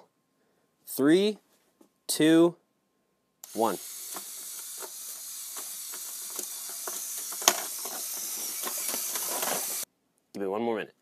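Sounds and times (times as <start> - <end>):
plastic gears clicking: 3.4 - 9.8
electric motor hiss: 3.4 - 9.9.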